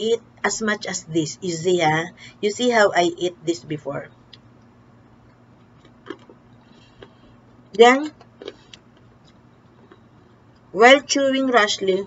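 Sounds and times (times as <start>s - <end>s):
peanuts crunching while eaten: 5.6s - 7.2s, 8.1s - 10.1s.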